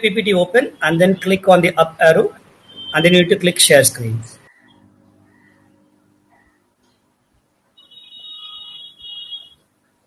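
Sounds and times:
high electronic beeps: 0:02.6 - 0:03.3.

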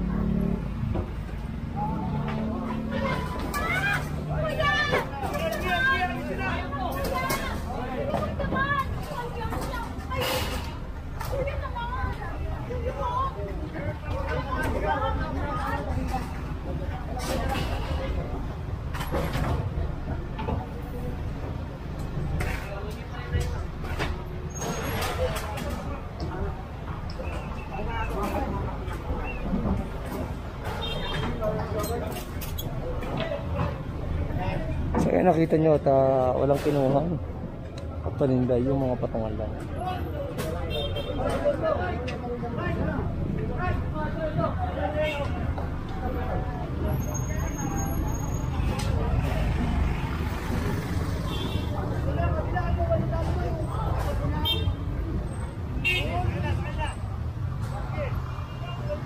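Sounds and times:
crowd voices: 0:00.0 - 0:59.0
people talking: 0:00.0 - 0:59.0
truck engine rumbling: 0:00.0 - 0:59.0.

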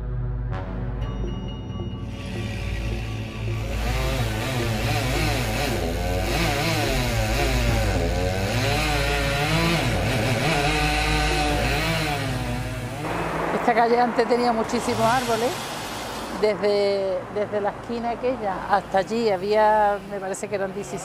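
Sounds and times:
chainsaw revving: 0:02.1 - 0:16.5.

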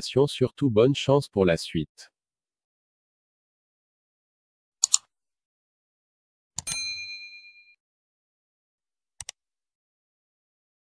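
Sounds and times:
mouse click: 0:04.8 - 0:05.1
notification bell ding: 0:06.6 - 0:07.8.

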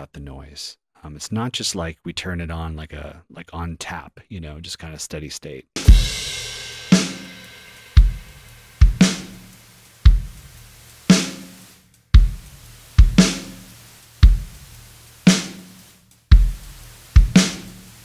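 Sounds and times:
snare drum hits: 0:06.9 - 0:09.5, 0:11.1 - 0:11.6, 0:12.2 - 0:14.6, 0:15.2 - 0:17.9
kick drum hits: 0:12.2 - 0:12.4.

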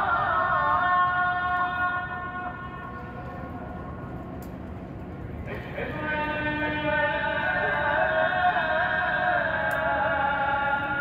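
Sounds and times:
call to prayer over loudspeakers: 0:00.0 - 0:11.0.

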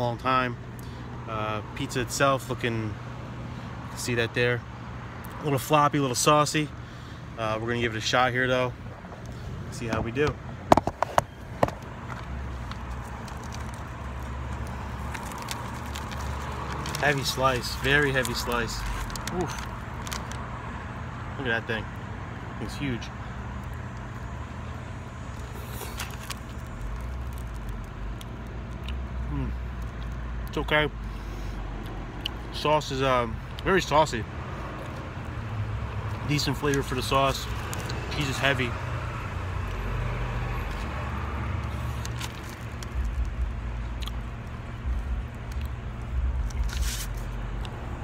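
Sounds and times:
low outdoor rumble: 0:00.0 - 0:48.0
person chewing food: 0:43.9 - 0:44.5.

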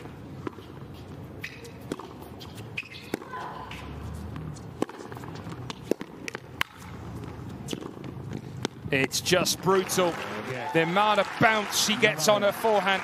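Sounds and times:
racket hitting tennis ball: 0:00.0 - 0:08.9
ball bouncing on hard court: 0:01.4 - 0:08.9
low crowd background: 0:03.1 - 0:13.0.

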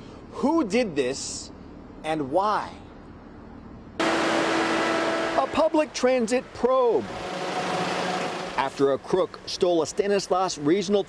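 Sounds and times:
street background: 0:00.0 - 0:11.0
bus engine hiss and hum: 0:02.8 - 0:10.7.

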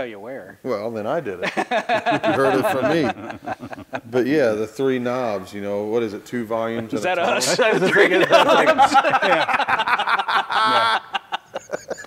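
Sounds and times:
men laughing: 0:01.4 - 0:04.4, 0:06.7 - 0:12.0.

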